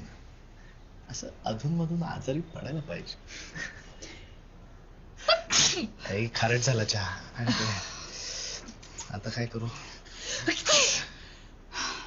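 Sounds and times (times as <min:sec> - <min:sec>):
woman sneezing: 0:05.2 - 0:06.0.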